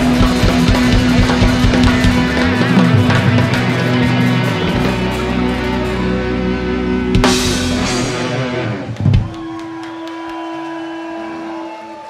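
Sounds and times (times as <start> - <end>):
electric guitar tone ringing: 0.0 - 9.4.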